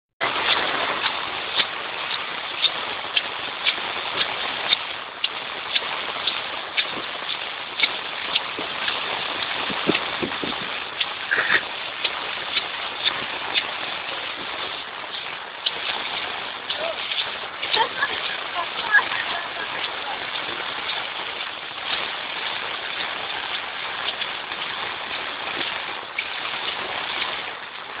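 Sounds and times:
footsteps on wet paving: 0.2 - 28.0
heavy rain hiss: 0.2 - 28.0.

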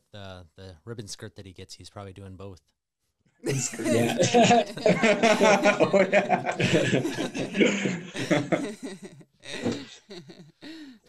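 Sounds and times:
murmured vocal sounds: 3.5 - 11.0
people chuckling quietly: 3.5 - 11.0
person humming: 3.5 - 11.0.

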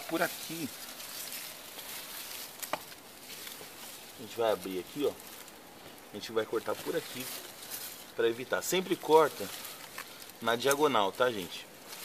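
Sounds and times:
faint plastic rustling: 0.0 - 12.0.

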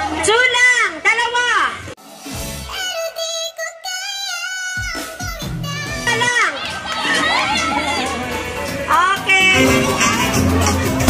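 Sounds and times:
song with high singing voice: 9.6 - 11.0.

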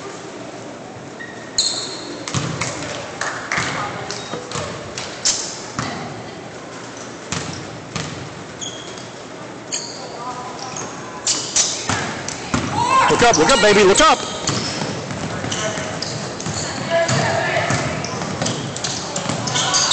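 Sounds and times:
sneaker squeaks: 1.1 - 2.5, 6.9 - 19.9.

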